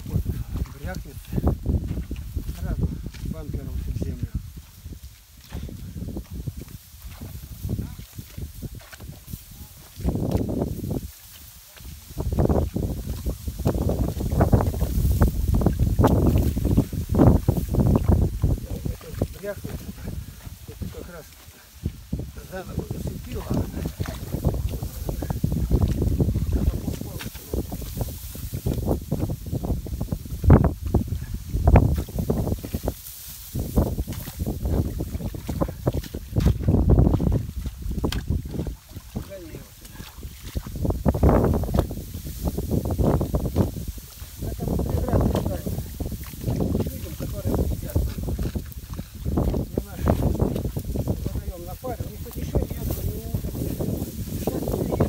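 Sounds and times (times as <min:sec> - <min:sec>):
wind on microphone: 0:00.0 - 0:55.0
tool scraping wet mud: 0:04.8 - 0:55.0.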